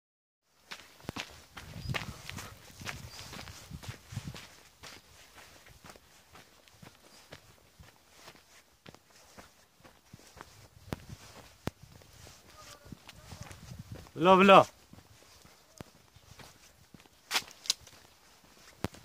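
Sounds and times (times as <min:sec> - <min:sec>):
footsteps crunching on dirt and grass: 0:00.5 - 0:19.0.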